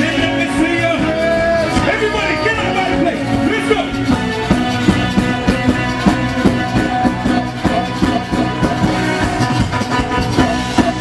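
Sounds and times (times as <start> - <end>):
live band playing: 0.0 - 11.0
loud drum beat: 0.0 - 11.0
person singing: 6.8 - 9.3, 10.3 - 11.0.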